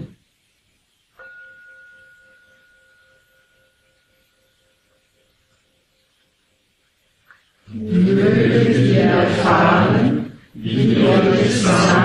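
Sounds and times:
meditation bell ringing: 1.1 - 6.8.

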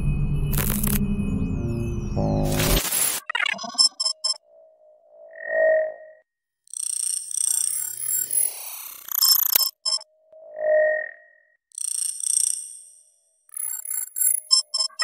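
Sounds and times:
rounded beep-like tone: 0.0 - 4.4
sweeping electronic tones: 0.0 - 4.4
high digital chirps and blips: 0.4 - 4.4.

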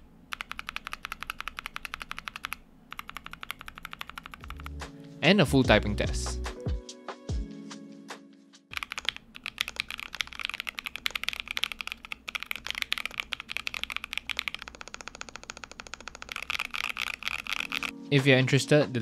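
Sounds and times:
mechanical keyboard typing: 0.3 - 4.8, 8.7 - 17.9
background music: 4.4 - 8.8, 17.6 - 19.0.

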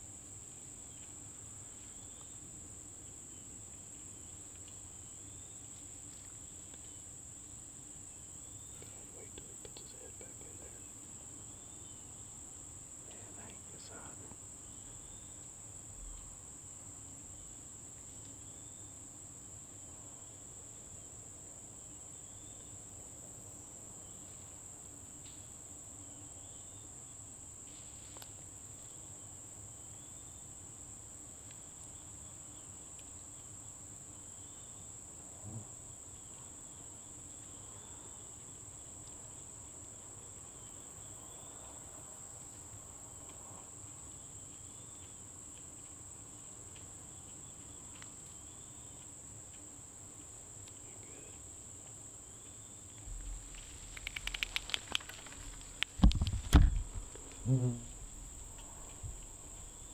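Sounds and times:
insect chirps: 0.0 - 59.9
insect trilling: 52.9 - 59.9.

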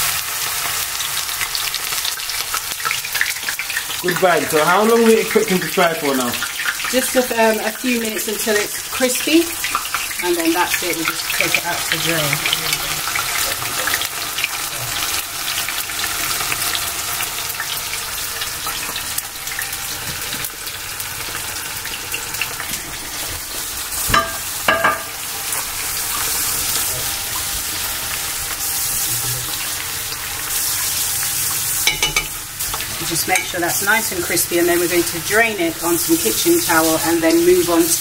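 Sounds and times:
mushrooms sizzling in hot oil: 0.0 - 38.0.

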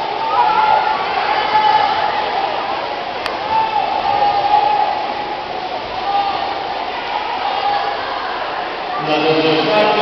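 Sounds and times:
spectators shouting encouragement: 0.0 - 10.0.

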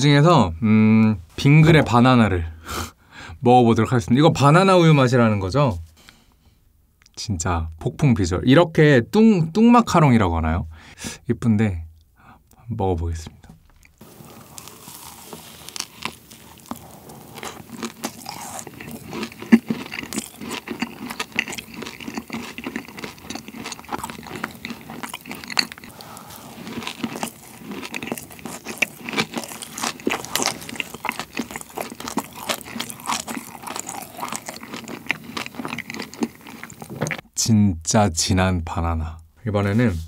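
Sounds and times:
macaron shell crunching: 14.4 - 26.0, 26.6 - 36.9.

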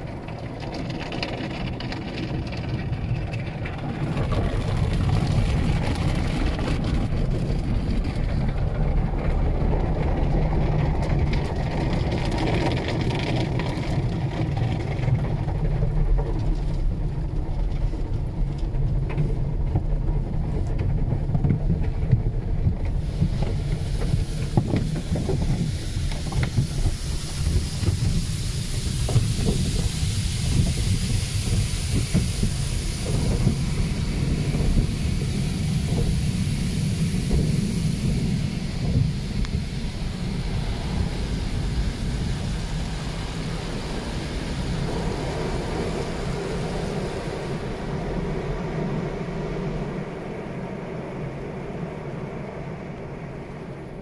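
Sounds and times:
hissing water spray: 0.0 - 16.9, 22.8 - 52.8
rinse water rushing on glass: 22.6 - 50.1.

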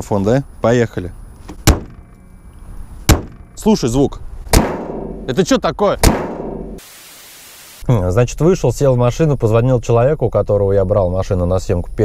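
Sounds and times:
car hood slamming shut: 1.5 - 2.0, 3.1 - 3.4.

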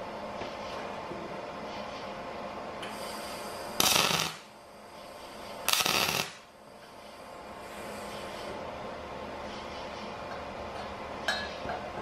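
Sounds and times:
steady background hum: 0.0 - 12.0
welding arc noise: 2.8 - 8.5.

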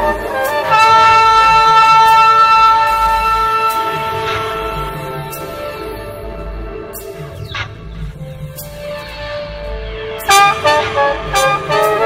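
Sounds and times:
electric trumpet short notes: 0.0 - 5.9, 10.3 - 12.0
low pulsing bass: 0.0 - 12.0.

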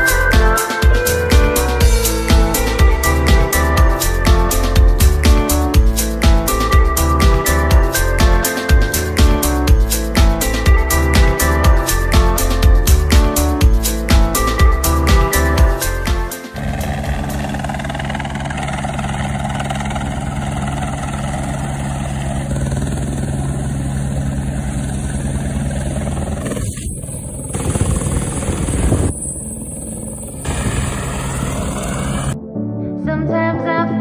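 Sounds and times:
helicopter rotor thrumming: 0.0 - 32.4.

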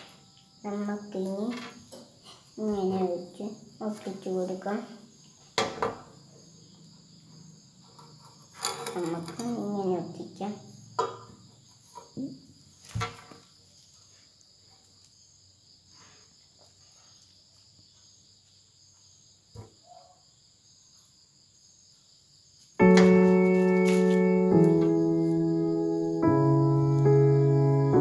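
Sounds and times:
electronic keyboard chords: 22.8 - 28.0.

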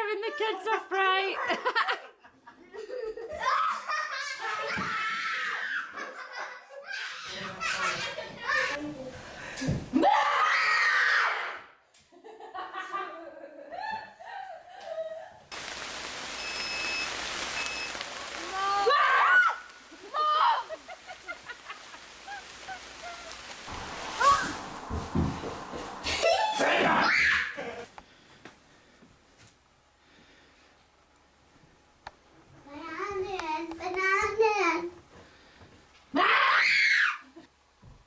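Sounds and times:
people screaming: 10.0 - 11.7, 18.3 - 27.9, 36.2 - 37.3
steady hiss: 15.5 - 36.1
people laughing: 20.0 - 23.4
people talking: 26.1 - 27.8.

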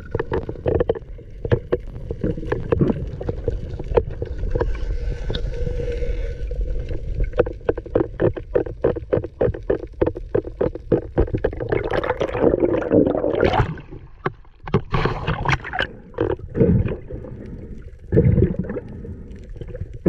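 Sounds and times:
rapid underwater clicks: 0.0 - 5.6, 6.5 - 20.0
gurgling rushing water: 7.2 - 20.0.

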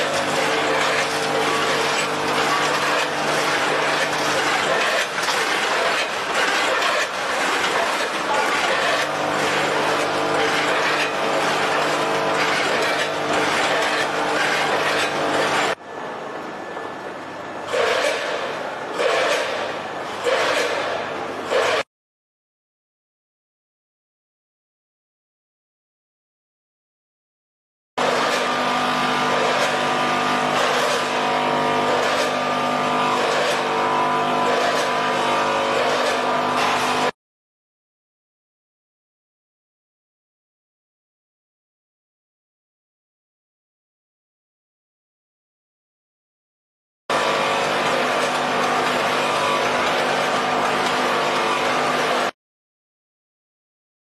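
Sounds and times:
machine clacking: 0.0 - 15.8, 28.0 - 37.1, 47.1 - 52.3
bagging machine humming: 0.0 - 21.8, 28.0 - 37.2, 47.1 - 52.3.

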